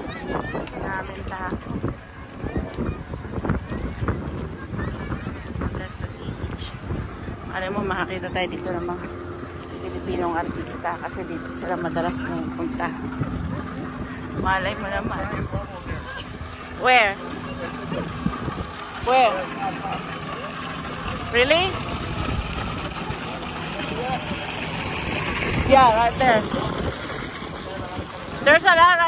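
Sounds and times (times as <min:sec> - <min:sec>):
crowd ambience: 0:00.0 - 0:29.0
wind buffeting microphone: 0:00.0 - 0:29.0.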